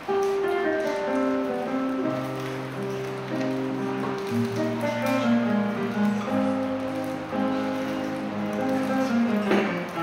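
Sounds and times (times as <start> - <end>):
classical guitar plucking: 0.0 - 10.0.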